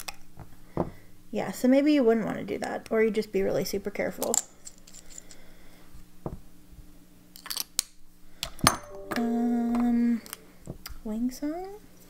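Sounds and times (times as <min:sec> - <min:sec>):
woman humming: 0:09.1 - 0:10.4.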